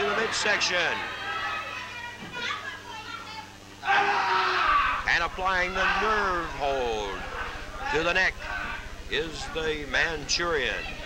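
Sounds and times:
audience chattering and calling out: 0.0s - 3.9s, 4.6s - 11.0s
low steady hum: 0.0s - 11.0s
announcer speaking: 5.0s - 11.0s.

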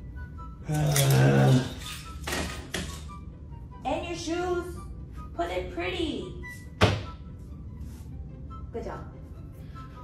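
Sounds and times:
keys clattering against wall: 0.7s - 3.2s.

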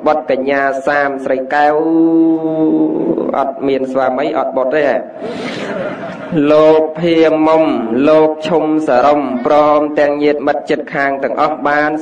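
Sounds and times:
man chanting: 0.0s - 5.2s, 6.3s - 12.0s.

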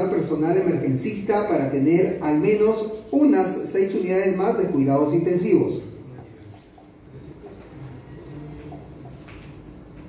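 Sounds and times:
faint low bird cooing: 5.9s - 9.3s.

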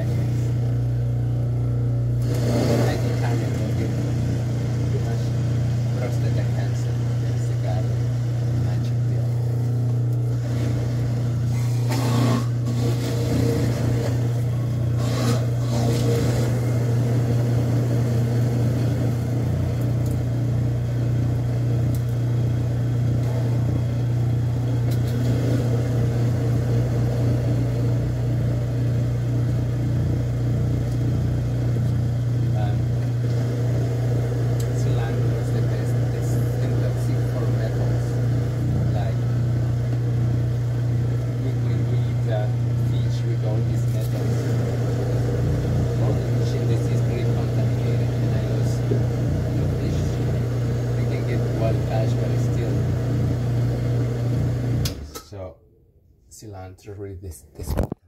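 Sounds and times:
juicer motor humming: 0.0s - 55.3s.

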